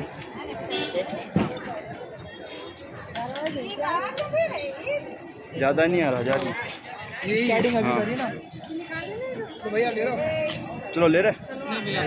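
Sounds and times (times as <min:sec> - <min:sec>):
street chatter: 0:00.0 - 0:12.0.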